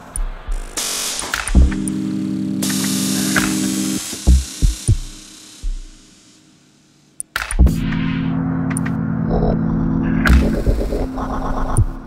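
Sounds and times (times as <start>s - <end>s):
low synthesizer chord: 1.6s - 6.4s, 7.6s - 12.0s.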